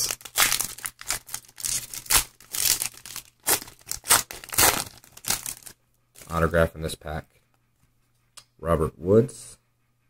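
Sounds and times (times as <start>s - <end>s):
wrapper tearing and crinkling: 0.0s - 6.3s.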